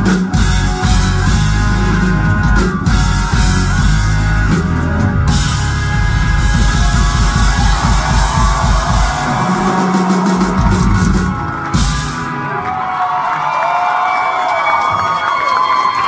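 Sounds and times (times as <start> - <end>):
live rock band playing: 0.0 - 13.4
crowd cheering and whooping: 6.1 - 16.0.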